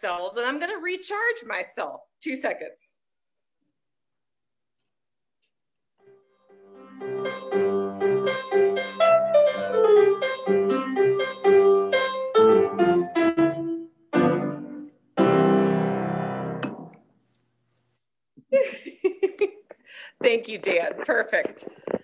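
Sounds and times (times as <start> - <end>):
piano playing: 6.0 - 17.0.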